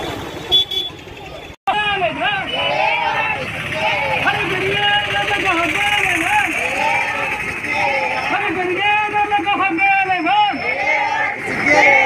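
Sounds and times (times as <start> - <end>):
marching crowd street noise: 0.0 - 12.0.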